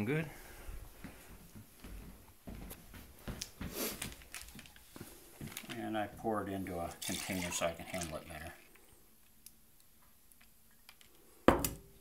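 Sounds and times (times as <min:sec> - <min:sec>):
footsteps on wooden floor: 0:00.7 - 0:06.3.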